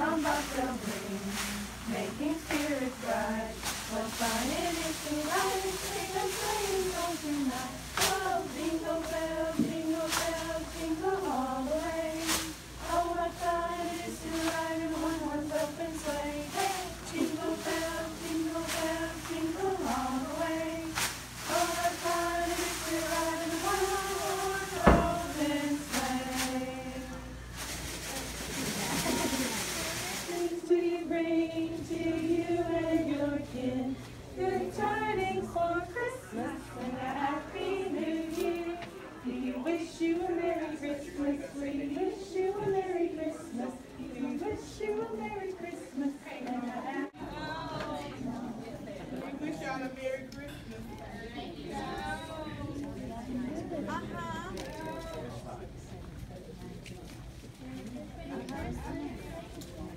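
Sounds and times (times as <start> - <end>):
girls singing together: 0.0 - 27.7, 30.2 - 48.6
pompoms rustling: 0.0 - 47.0.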